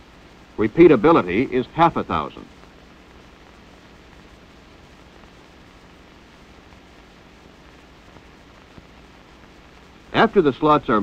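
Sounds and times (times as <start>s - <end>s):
film soundtrack hiss: 0.0s - 11.0s.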